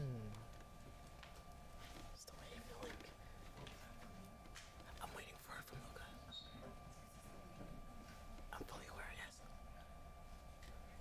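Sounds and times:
faint high hum: 0.0s - 11.0s.

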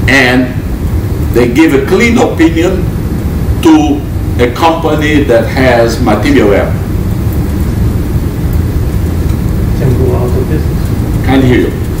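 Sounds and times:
classroom background rumble: 0.0s - 12.0s.

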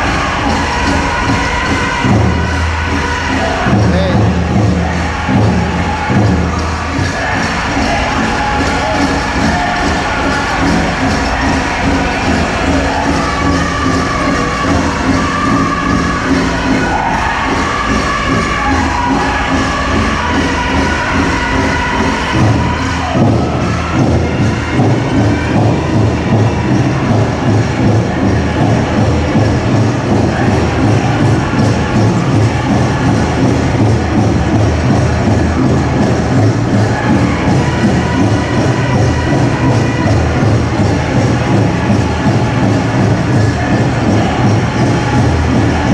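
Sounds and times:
big drum steady beat: 0.0s - 45.9s
singers singing in high voices: 0.0s - 45.9s.

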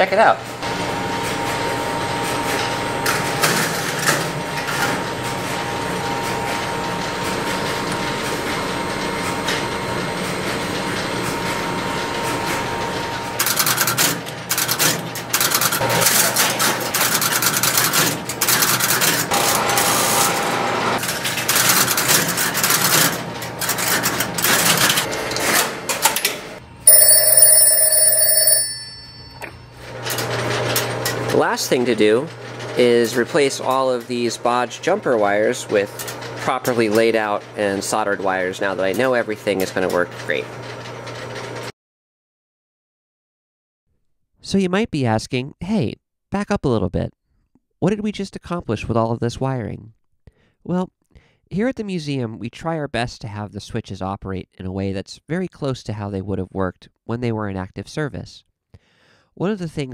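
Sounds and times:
telephone bell ringing: 26.9s - 30.1s.

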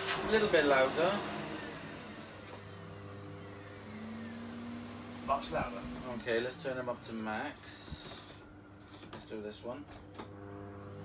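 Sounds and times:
vacuum cleaner motor hum: 0.0s - 9.1s, 10.2s - 11.0s.

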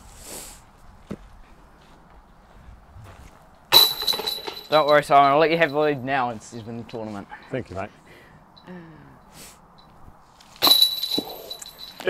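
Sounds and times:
disc clanging chain basket: 3.7s - 6.2s, 10.6s - 12.0s.

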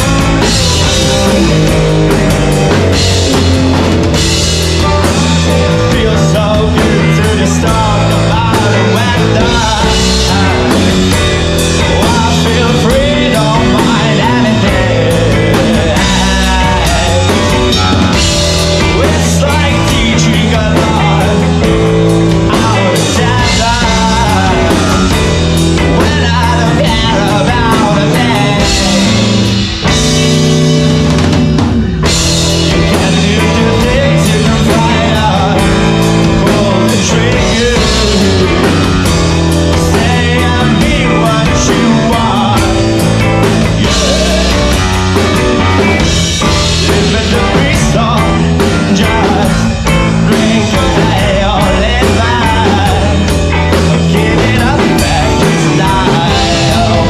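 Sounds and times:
bass guitar: 0.0s - 57.0s
drum kit: 0.0s - 57.0s
electric guitar: 0.0s - 57.0s
lead singer singing: 0.0s - 57.0s
live rock band playing: 0.0s - 57.0s.

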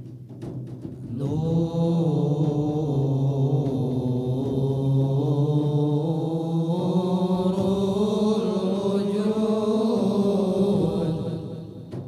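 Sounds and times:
men chanting: 1.1s - 12.0s.

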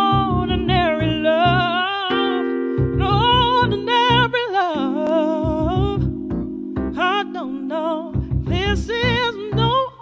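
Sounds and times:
low bass notes: 0.0s - 1.8s, 2.8s - 4.4s, 5.4s - 9.8s
electronic keyboard chords: 0.0s - 10.0s
woman singing with vibrato: 0.0s - 10.0s.

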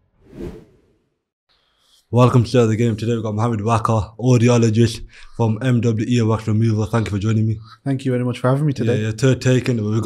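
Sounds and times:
whoosh: 0.0s - 1.1s.

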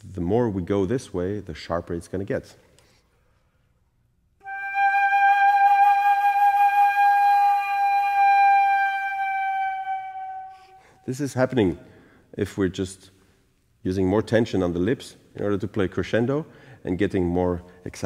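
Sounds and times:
flute long note with vibrato: 4.4s - 11.0s.

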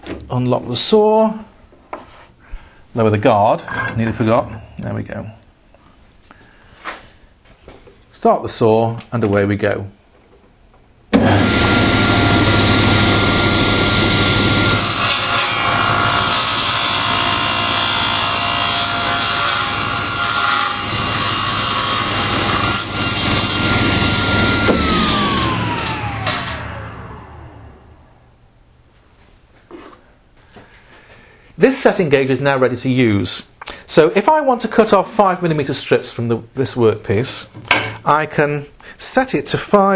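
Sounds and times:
saw blade cutting wood: 11.2s - 27.1s
table saw whining: 11.2s - 28.3s.

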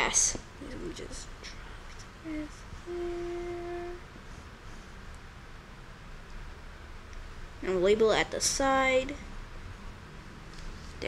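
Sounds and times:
child humming: 2.2s - 4.0s.

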